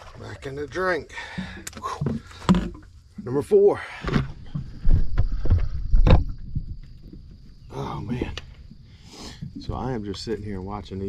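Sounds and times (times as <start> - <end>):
knocks and thumps in a boat: 0.0 - 10.9.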